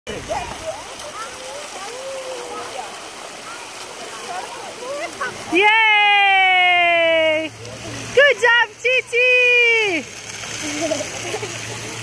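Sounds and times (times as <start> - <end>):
pool water splashing and lapping: 0.1 - 12.0
voices calling and chattering: 0.1 - 12.0.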